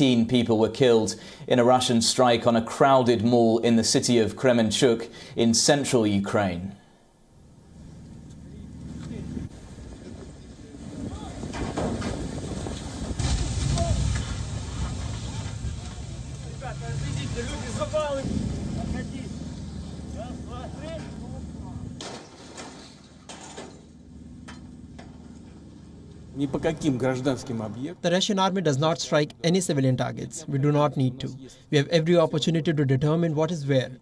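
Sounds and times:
low rumbling background noise: 5.1s - 32.0s.

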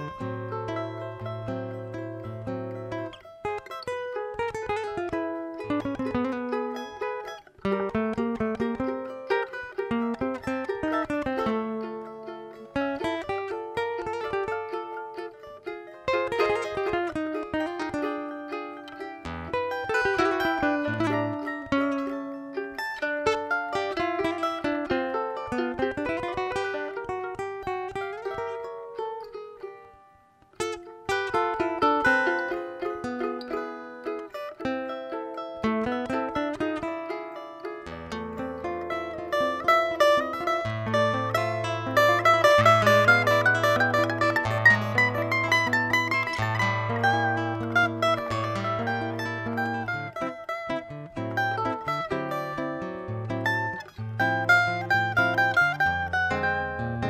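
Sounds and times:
cavaquinho picking a melody: 0.0s - 57.0s
nylon-string guitar chords: 0.0s - 57.0s.

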